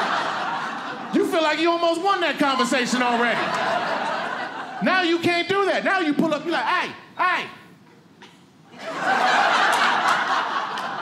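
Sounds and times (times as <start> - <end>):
audience laughing: 0.0 - 5.2, 8.7 - 11.0.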